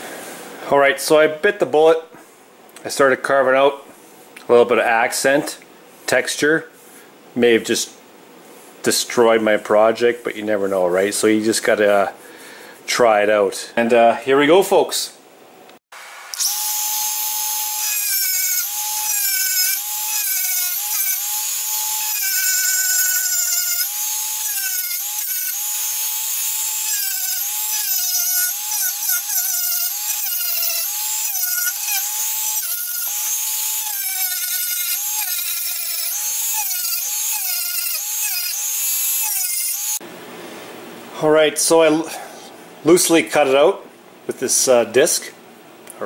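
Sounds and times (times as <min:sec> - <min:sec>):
rotary tool cutting wood: 0:16.2 - 0:40.0.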